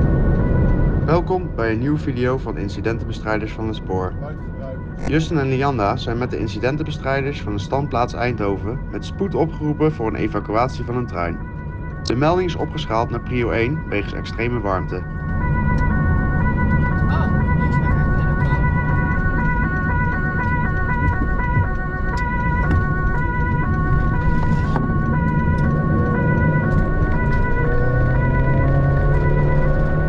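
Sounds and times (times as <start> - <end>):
engine and road rumble: 0.0 - 30.0
two-tone emergency siren: 0.0 - 30.0.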